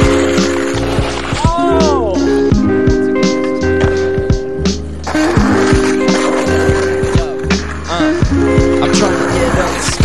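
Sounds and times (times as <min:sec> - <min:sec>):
background music with steady beat: 0:00.0 - 0:10.0
skateboard wheels rolling on concrete: 0:00.0 - 0:10.0.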